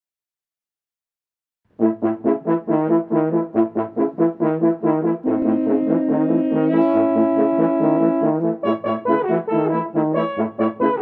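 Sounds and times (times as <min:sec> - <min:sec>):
french horns playing note: 0:05.2 - 0:09.6.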